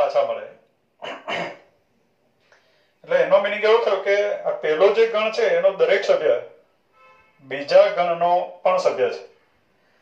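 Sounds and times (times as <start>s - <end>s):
man clearing his throat: 1.0s - 1.7s
faint breath: 2.4s - 3.0s, 9.5s - 10.0s.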